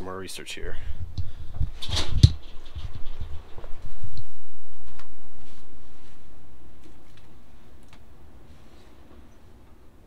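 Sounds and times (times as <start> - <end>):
debris scratching: 1.6 - 4.0.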